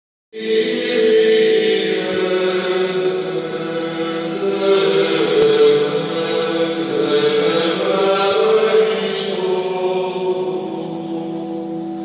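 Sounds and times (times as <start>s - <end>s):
choral chant music: 0.4s - 12.0s.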